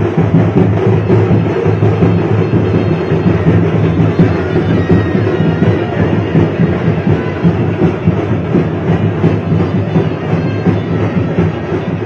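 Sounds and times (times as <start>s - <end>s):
drum-heavy procession music: 0.0s - 12.0s.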